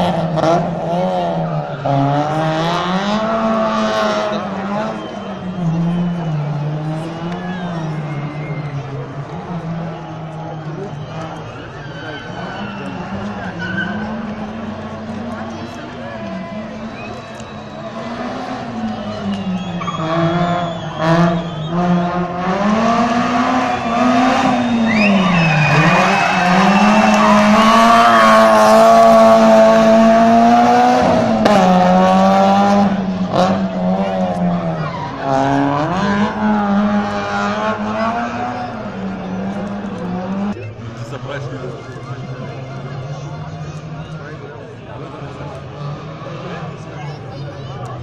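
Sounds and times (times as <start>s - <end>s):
rally car engine revving past: 20.0s - 41.0s.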